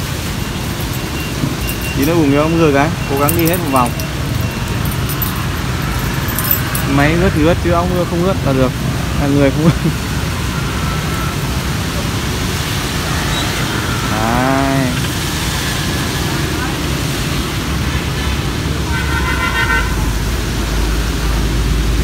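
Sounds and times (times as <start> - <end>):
road traffic: 0.0 - 22.0.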